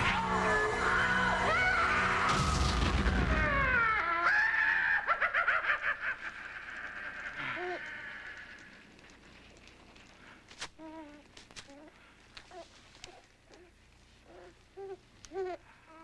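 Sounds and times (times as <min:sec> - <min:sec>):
falling high cries: 0:00.0 - 0:08.8
low explosion rumble: 0:02.3 - 0:03.8.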